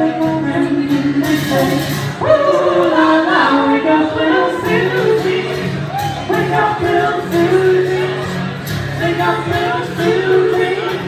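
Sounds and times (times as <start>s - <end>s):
several voices singing together: 0.0s - 8.4s.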